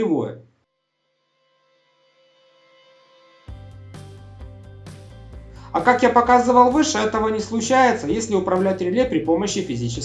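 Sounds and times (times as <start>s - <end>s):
soft background music: 1.4s - 10.0s.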